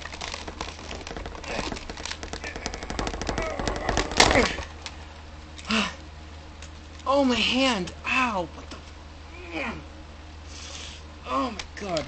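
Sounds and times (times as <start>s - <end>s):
plastic clicking and rattling: 0.0s - 4.7s.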